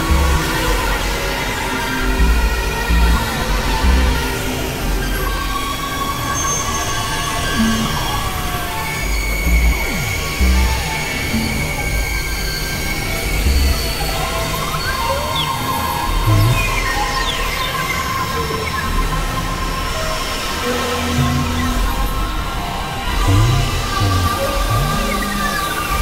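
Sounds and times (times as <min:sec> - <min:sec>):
low bass thumps: 0:00.0 - 0:00.7, 0:02.0 - 0:04.3, 0:09.4 - 0:11.7, 0:13.5 - 0:13.8, 0:16.3 - 0:16.7, 0:21.1 - 0:21.9, 0:23.3 - 0:25.7
experimental electronic music: 0:00.0 - 0:01.2, 0:02.0 - 0:04.5, 0:07.6 - 0:08.4, 0:09.3 - 0:12.2, 0:13.4 - 0:14.2, 0:16.2 - 0:16.8, 0:20.6 - 0:22.2, 0:23.1 - 0:26.0.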